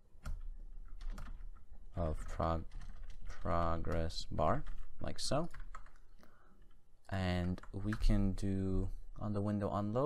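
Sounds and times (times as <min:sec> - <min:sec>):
keyboard typing: 0:00.2 - 0:08.4.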